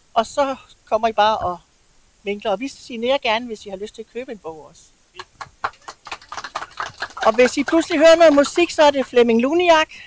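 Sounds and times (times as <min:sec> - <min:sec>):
people clapping: 0:05.2 - 0:09.2.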